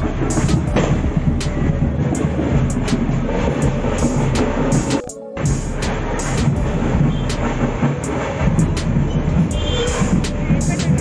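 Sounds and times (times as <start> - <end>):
street din with low rumble: 0.0 - 11.0.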